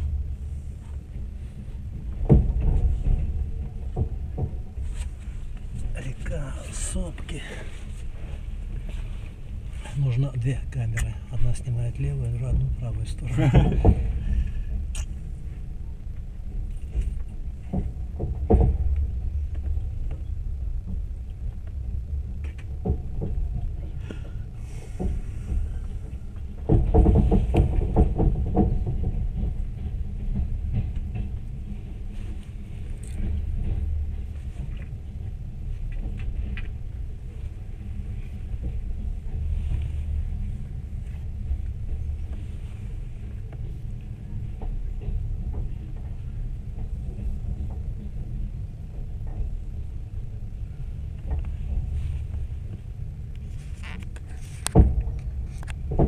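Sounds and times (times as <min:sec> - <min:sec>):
train clatter: 0:00.0 - 0:56.0
train rumbling on rails: 0:00.0 - 0:56.0.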